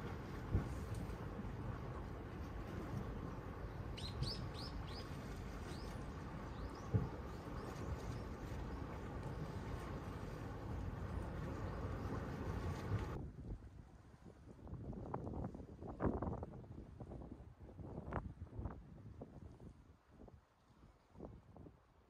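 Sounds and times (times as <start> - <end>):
wind buffeting microphone: 0.0 - 20.4.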